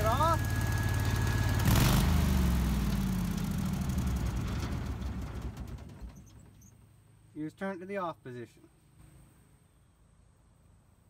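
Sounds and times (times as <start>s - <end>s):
engine winding down: 0.0s - 6.4s.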